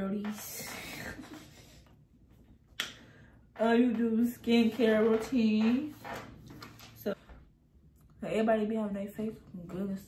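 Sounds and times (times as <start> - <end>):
soft laugh: 0.8 - 2.0.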